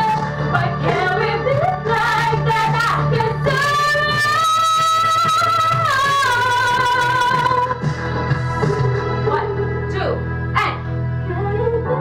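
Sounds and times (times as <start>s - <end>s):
pop ballad backing track: 0.0s - 12.0s.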